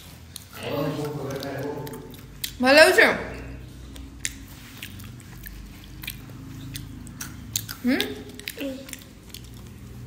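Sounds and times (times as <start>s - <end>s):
toddler chewing: 0.0s - 2.6s, 3.4s - 10.0s.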